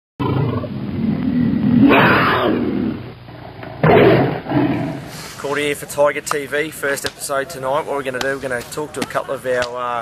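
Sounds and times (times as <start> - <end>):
tiger growling and roaring: 0.2 - 5.2.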